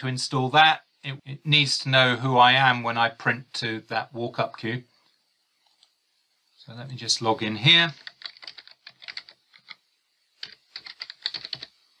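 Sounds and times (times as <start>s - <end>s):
typing on computer keyboard: 7.9s - 9.8s, 10.4s - 11.7s.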